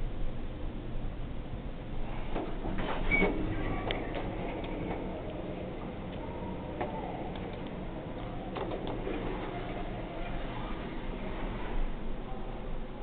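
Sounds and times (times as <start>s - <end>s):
steady low hum: 0.0s - 13.0s
elevator doors opening: 2.0s - 13.0s
elevator clicks and ticks: 2.3s - 10.0s.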